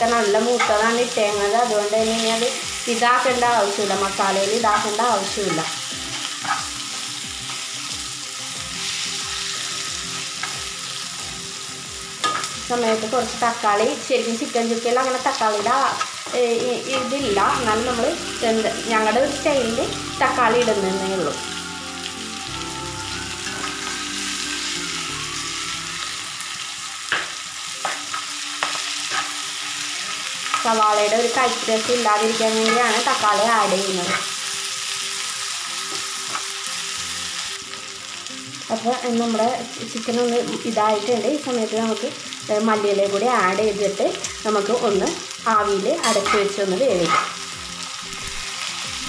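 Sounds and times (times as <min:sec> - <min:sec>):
chicken sizzling in oil: 0:00.0 - 0:49.0
metal spatula scraping pan: 0:06.4 - 0:06.7, 0:27.1 - 0:29.4.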